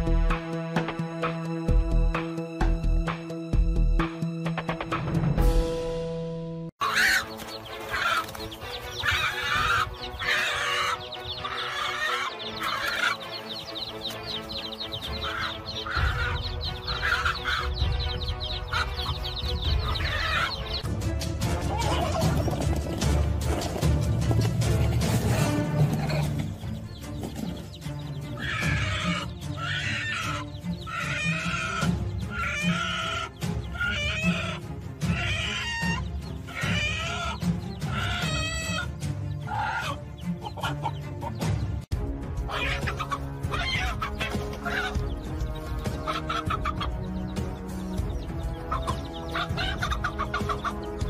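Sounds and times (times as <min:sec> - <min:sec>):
background music with held notes: 0:00.0 - 0:51.0
chicken squawking: 0:06.8 - 0:20.8, 0:21.6 - 0:22.8, 0:25.1 - 0:41.5, 0:42.4 - 0:51.0
high-pitched bird calls: 0:06.8 - 0:20.9, 0:26.0 - 0:41.6, 0:42.5 - 0:51.0.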